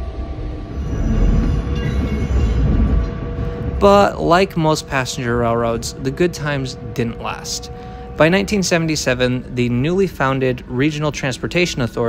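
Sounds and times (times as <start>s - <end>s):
electric train rumbling on track: 0.0s - 12.0s.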